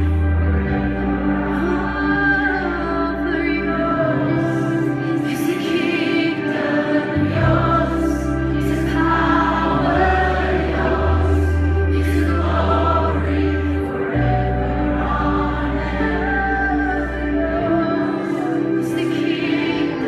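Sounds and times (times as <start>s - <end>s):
deep held bass notes: 0.0s - 5.2s, 7.2s - 19.0s
band playing sustained chords: 0.0s - 20.0s
many voices singing together: 0.0s - 20.0s.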